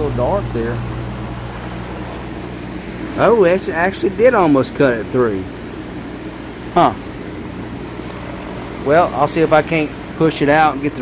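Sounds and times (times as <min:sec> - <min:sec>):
machine fans and pumps humming: 0:00.0 - 0:11.0.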